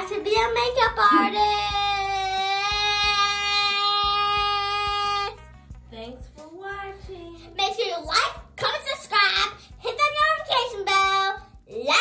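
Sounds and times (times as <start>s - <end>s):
background music with beat: 0.0s - 10.4s
girl singing a held note: 1.1s - 1.6s.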